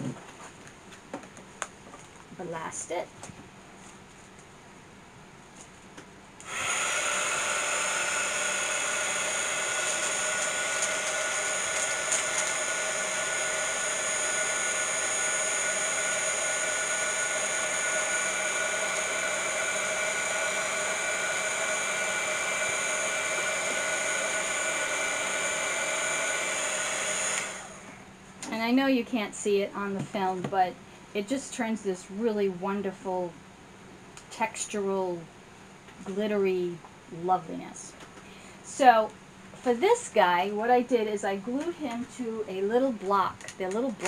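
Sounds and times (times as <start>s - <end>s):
heat gun fan blowing: 6.0s - 28.6s.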